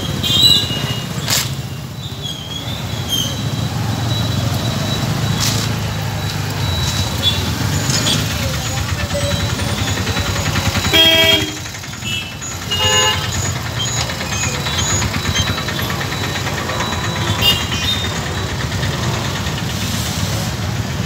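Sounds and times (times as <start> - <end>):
traffic engines running: 0.0 - 21.0
vehicle horn honking: 10.8 - 13.5, 17.4 - 17.9.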